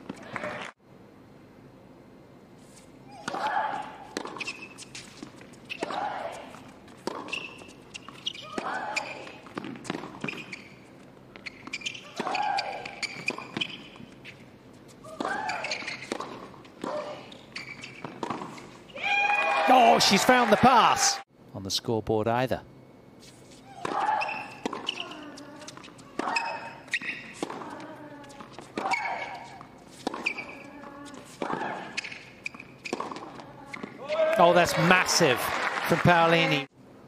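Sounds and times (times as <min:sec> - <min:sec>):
racket striking tennis ball: 0:23.8 - 0:25.3, 0:28.6 - 0:33.9.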